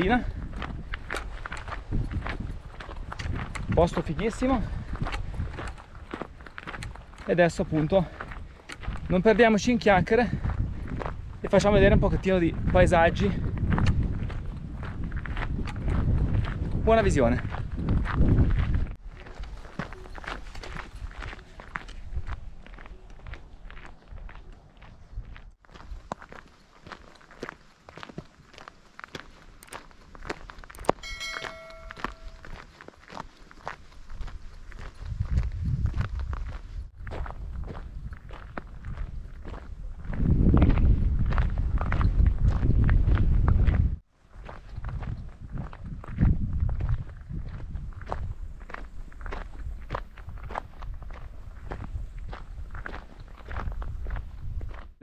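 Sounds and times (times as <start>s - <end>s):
wind rumbling on microphone: 0.0s - 26.4s, 29.6s - 55.0s
footsteps crunching on gravel: 0.0s - 55.0s.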